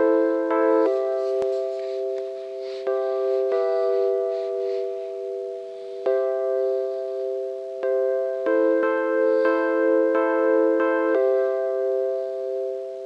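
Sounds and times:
sustained keyboard chords: 0:00.0 - 0:13.0.

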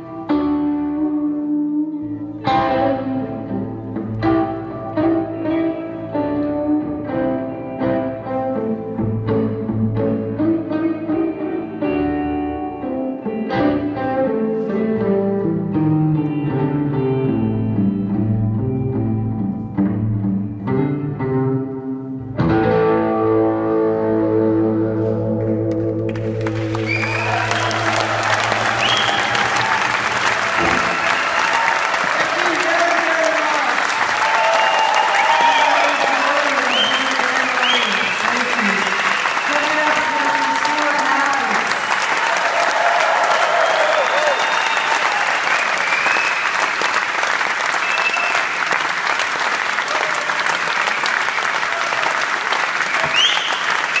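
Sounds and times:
audience applauding and cheering: 0:25.4 - 0:54.0
audience whistling: 0:26.2 - 0:41.0, 0:42.1 - 0:54.0.

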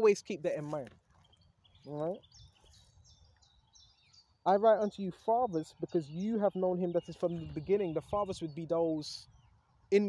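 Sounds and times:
man speaking: 0:00.0 - 0:01.0, 0:01.9 - 0:02.2, 0:04.5 - 0:09.3
high bird chirps: 0:01.1 - 0:10.0.

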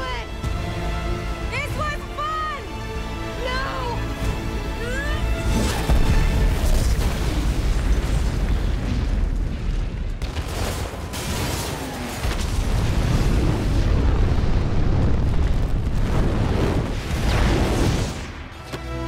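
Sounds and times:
deep booming explosions: 0:05.4 - 0:18.6.

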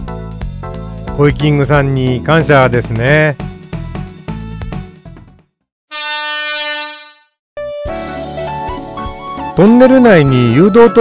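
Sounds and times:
background music: 0:00.0 - 0:05.5, 0:07.6 - 0:11.0
buzzy horn blast: 0:05.9 - 0:07.4.

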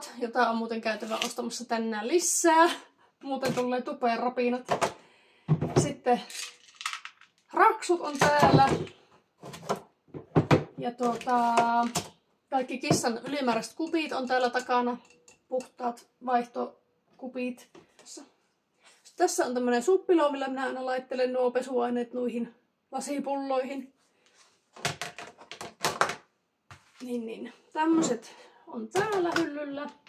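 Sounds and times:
woman speaking: 0:00.0 - 0:04.8, 0:05.7 - 0:06.5, 0:07.5 - 0:08.9, 0:10.8 - 0:18.3, 0:19.1 - 0:23.9, 0:27.0 - 0:30.0
plastic knocks and clatters: 0:04.6 - 0:05.9, 0:08.1 - 0:12.2, 0:24.8 - 0:26.2.

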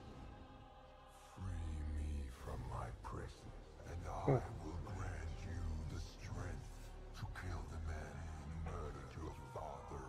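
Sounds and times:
deep whispering demonic voice: 0:00.0 - 0:10.0.

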